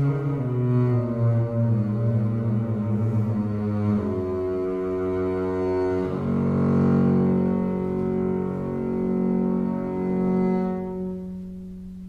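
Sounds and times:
bowed double bass: 0:00.0 - 0:12.0.

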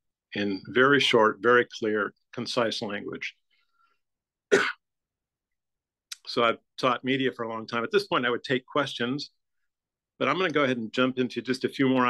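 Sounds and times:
man clearing throat: 0:04.5 - 0:04.8.

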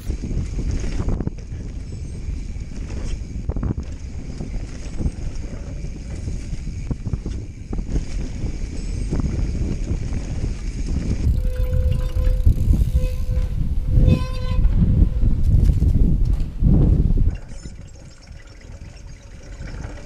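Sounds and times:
bike tyres rumbling and rattling: 0:00.0 - 0:20.0
wind buffeting microphone: 0:00.0 - 0:20.0.

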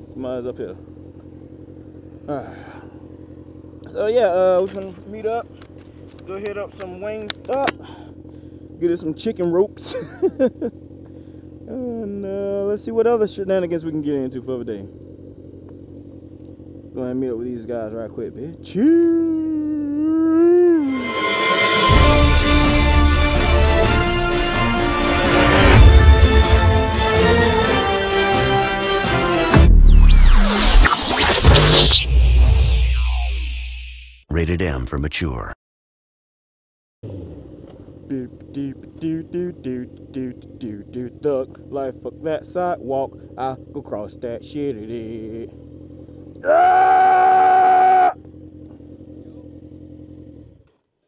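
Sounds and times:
motorcycle engine idling: 0:00.0 - 0:20.7, 0:37.0 - 0:46.4, 0:48.1 - 0:51.0
man laughing: 0:09.8 - 0:10.8, 0:18.8 - 0:20.9.

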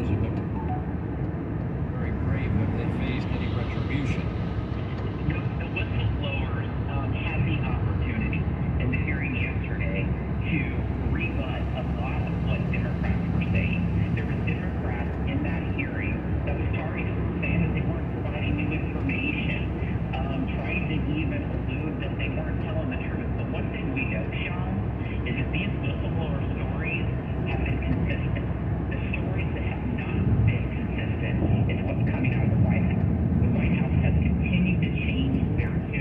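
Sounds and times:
talk from car radio: 0:00.0 - 0:00.6, 0:01.8 - 0:36.0
car road noise on wet pavement: 0:00.0 - 0:36.0.

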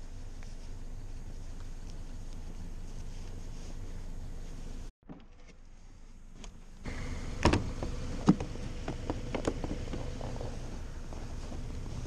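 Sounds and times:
gloves rustling: 0:00.0 - 0:04.9, 0:07.8 - 0:12.0.

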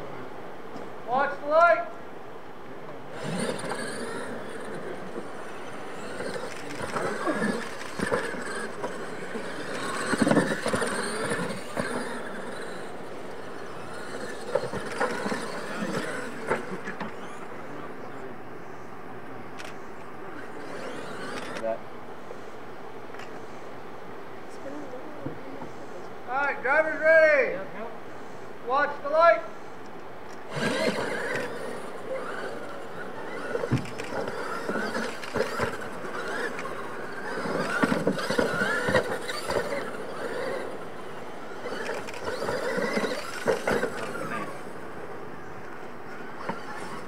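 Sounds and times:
tyres churning dirt: 0:02.8 - 0:19.0, 0:19.7 - 0:21.8, 0:30.3 - 0:47.0
trucks landing jumps: 0:03.1 - 0:17.5, 0:20.4 - 0:21.6, 0:30.4 - 0:45.1, 0:46.3 - 0:47.0
toy truck motor whine: 0:03.1 - 0:18.3, 0:19.6 - 0:21.8, 0:30.3 - 0:47.0.

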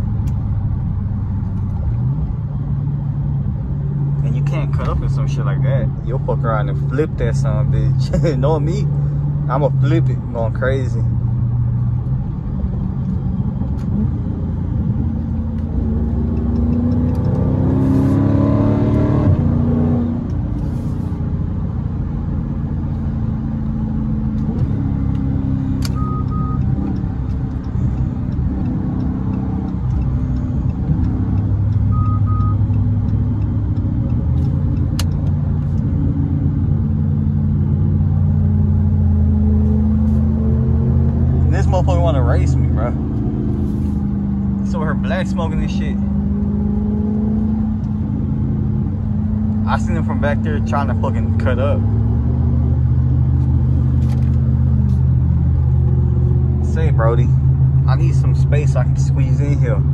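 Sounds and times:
car engine from inside cabin: 0:00.0 - 0:59.9
short beeps: 0:25.9 - 0:26.7, 0:31.9 - 0:32.7.

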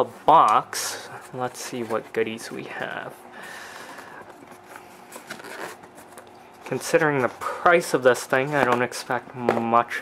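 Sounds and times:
hands handling cardboard box: 0:03.8 - 0:07.4.

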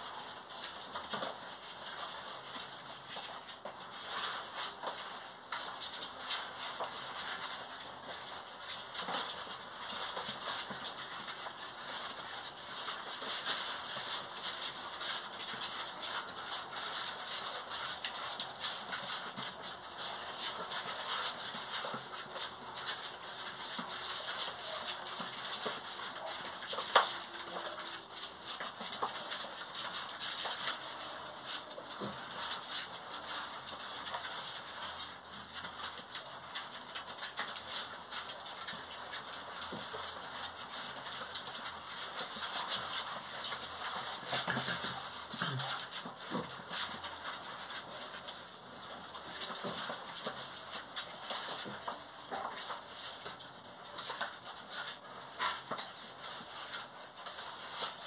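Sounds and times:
puppy claws scrabbling on cardboard: 0:00.3 - 0:58.0.

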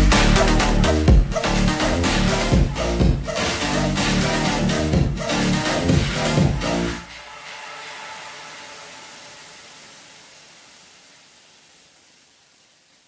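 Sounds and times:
music: 0:00.0 - 0:10.2
soft hiss: 0:07.1 - 0:13.0.

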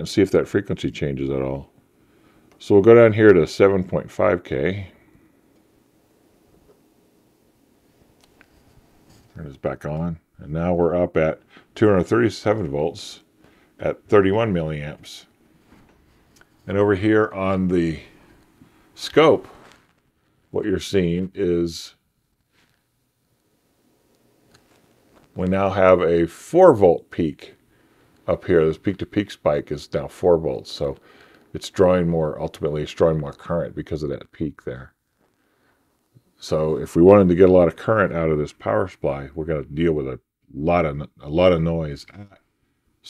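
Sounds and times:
faint low hum: 0:00.0 - 0:43.0.

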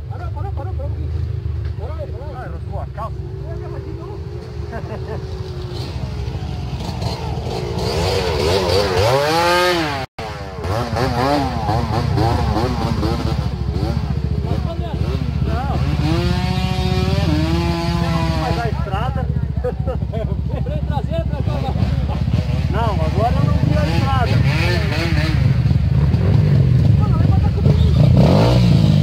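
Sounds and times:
dirt bike engines idling and revving: 0:00.0 - 0:29.0.

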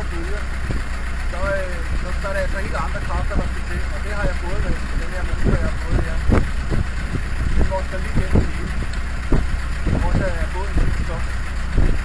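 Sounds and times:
marine diesel engine droning: 0:00.0 - 0:12.0.

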